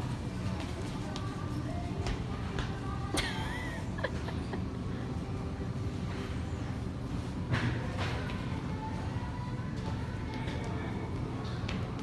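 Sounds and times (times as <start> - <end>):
low store background rumble: 0.0 - 12.0.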